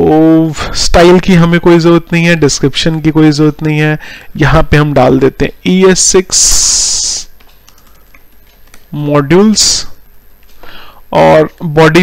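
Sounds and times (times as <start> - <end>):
faint keyboard typing: 3.4 - 4.3, 6.6 - 11.8.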